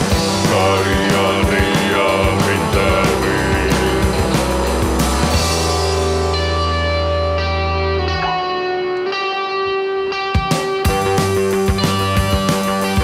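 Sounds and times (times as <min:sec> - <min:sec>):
drums: 0:00.0 - 0:08.4, 0:10.2 - 0:13.0
bass guitar note: 0:00.0 - 0:08.5
electric guitar chords: 0:00.0 - 0:13.0.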